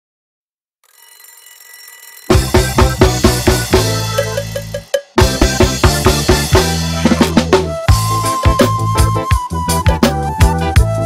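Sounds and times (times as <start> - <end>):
alarm clock bell ringing: 0.8 - 5.0.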